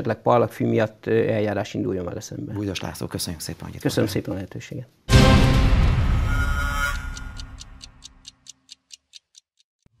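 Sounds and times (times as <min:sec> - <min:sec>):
clock-like ticking: 0:06.3 - 0:09.9.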